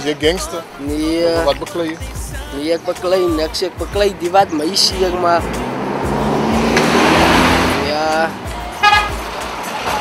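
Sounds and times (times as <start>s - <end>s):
car passing by: 4.4s - 10.0s.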